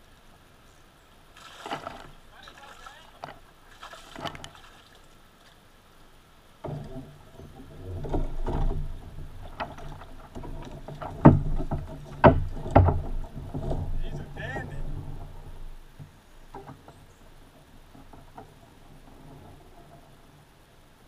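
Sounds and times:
knocks and thumps on a kayak: 1.6 - 4.7, 6.6 - 20.5
low rumble of handling noise: 1.6 - 21.0.

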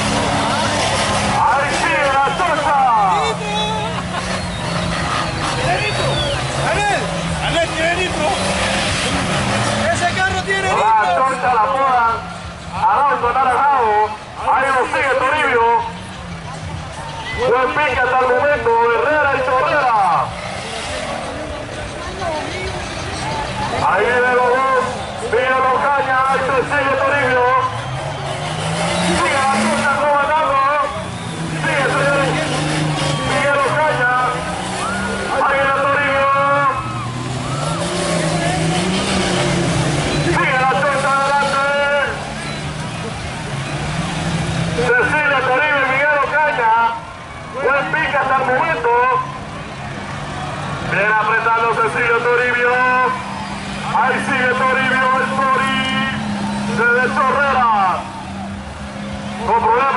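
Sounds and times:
truck engine revving: 0.0 - 59.9
man talking over loudspeaker: 1.2 - 4.0, 5.6 - 8.7, 9.7 - 16.0, 17.2 - 20.4, 23.6 - 27.8, 29.0 - 37.0, 40.2 - 42.4, 44.7 - 49.4, 50.8 - 58.2, 59.3 - 59.9.

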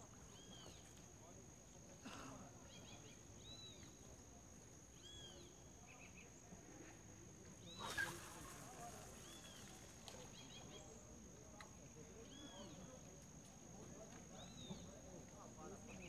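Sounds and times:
faint bird chirps: 0.2 - 1.0, 2.6 - 4.1, 4.9 - 6.6, 7.6 - 11.2, 12.2 - 13.0, 14.3 - 15.0.

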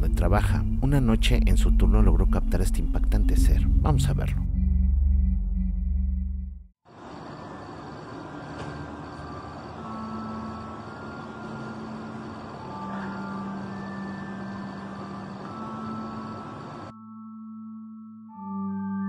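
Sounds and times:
low drone tones: 0.0 - 6.7, 8.8 - 17.2
faint high pulsing tone: 9.1 - 18.0.

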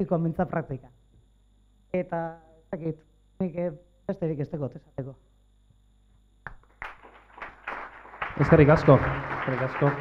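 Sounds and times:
audience applauding: 6.7 - 10.0.

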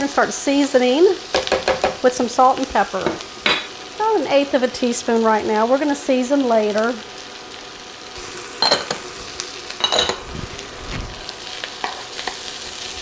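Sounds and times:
food sizzling in a skillet: 0.0 - 13.0.

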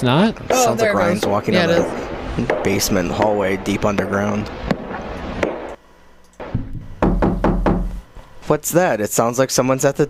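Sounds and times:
knocking on a door: 6.6 - 8.0.

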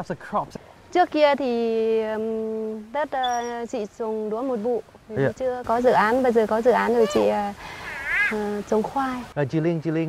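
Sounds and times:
woman speaking: 0.9 - 7.6, 8.3 - 9.3.

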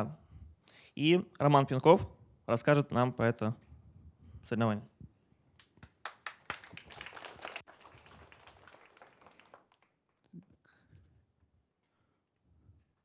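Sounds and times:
small audience applauding: 5.6 - 10.7.

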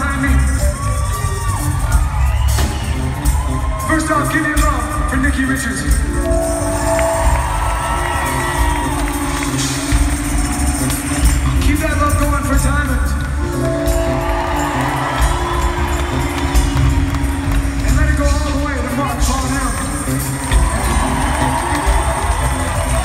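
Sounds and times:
crowd cheering: 0.0 - 5.5, 6.2 - 23.0
live rock band playing: 0.0 - 23.0.

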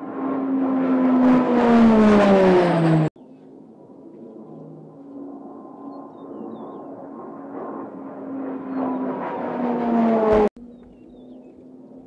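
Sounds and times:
distant aircraft drone: 0.0 - 12.0
turboprop aircraft passing: 0.0 - 12.0.

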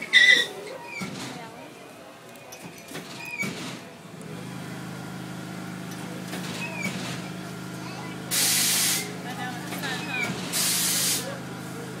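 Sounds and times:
faint children's voices: 6.0 - 10.4
loud air release hisses: 8.3 - 9.2, 10.5 - 11.3.

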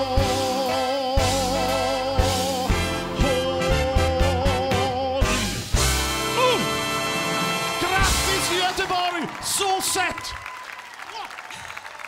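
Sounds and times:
person shouting: 6.3 - 6.8
crowd calls: 6.6 - 12.0
audience applauding: 7.2 - 12.0.

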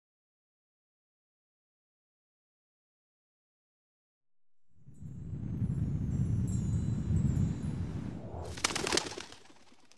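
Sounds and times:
low rumble: 4.8 - 8.6.

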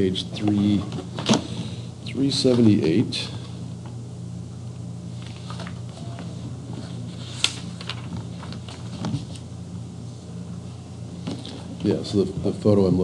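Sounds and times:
steady low hum: 0.0 - 13.0
book pages being leafed through: 5.2 - 9.5.

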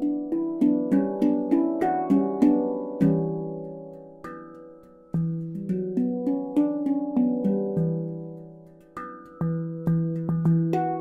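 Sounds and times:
handpan notes struck: 0.0 - 11.0.

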